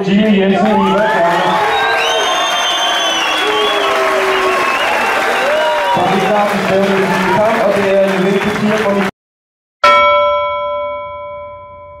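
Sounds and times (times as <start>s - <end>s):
bell-like chime ringing: 9.8s - 12.0s.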